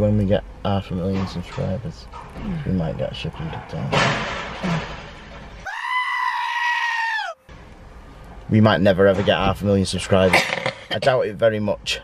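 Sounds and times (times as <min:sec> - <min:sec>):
goat bleating: 0:05.6 - 0:07.4.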